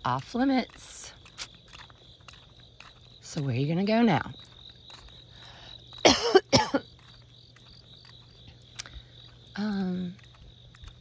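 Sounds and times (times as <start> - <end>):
high-pitched insect trill: 0.0 - 11.0
woman coughing: 6.0 - 7.0.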